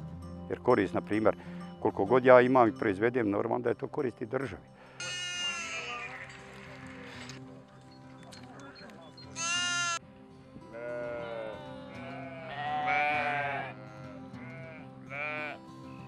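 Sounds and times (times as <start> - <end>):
background music: 0.0 - 16.0
sheep bleating: 4.9 - 7.3, 8.5 - 10.0, 10.7 - 16.0.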